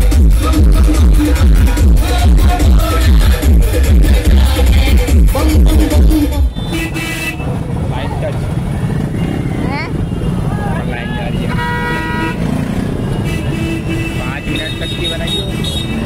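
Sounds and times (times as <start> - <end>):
motorcycle engines idling: 0.0 - 6.4
overlapping crowd voices: 0.0 - 6.4
loud music with heavy bass: 0.0 - 6.6
vehicle horn honking: 6.4 - 7.6, 9.2 - 16.0.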